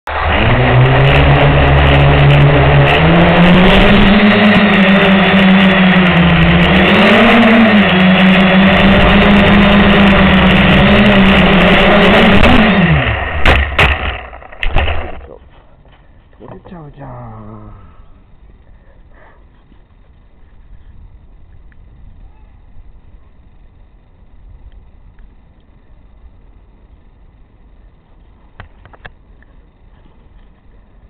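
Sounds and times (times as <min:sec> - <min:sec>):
quadcopter motors and propellers: 0:00.1 - 0:31.0
sharp knocks: 0:13.4 - 0:15.2.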